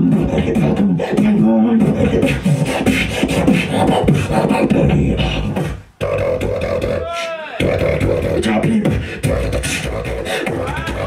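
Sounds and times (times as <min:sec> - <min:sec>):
person beatboxing into a microphone: 0:00.0 - 0:11.0.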